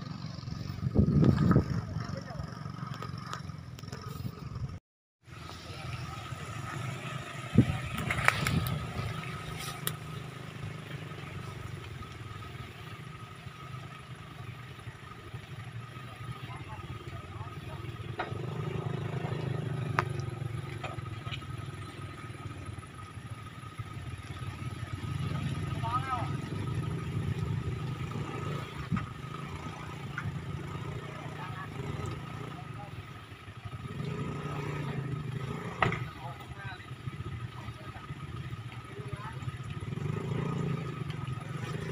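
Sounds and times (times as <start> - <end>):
vehicle engine under load: 0.0 - 41.9.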